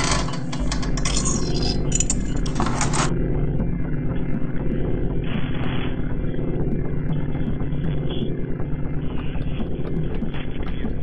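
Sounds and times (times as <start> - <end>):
low fluttering droning rumble: 0.0 - 11.0.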